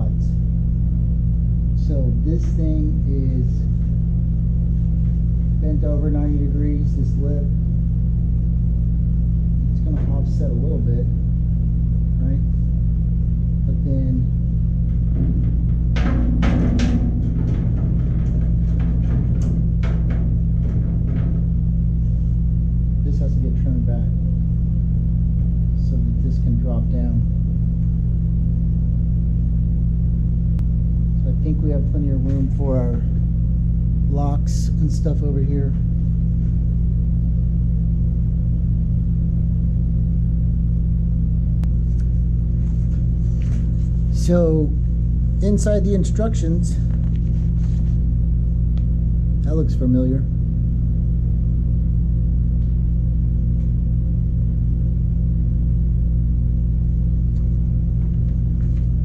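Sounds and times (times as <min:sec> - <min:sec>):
loud steady low hum: 0:00.0 - 0:59.0.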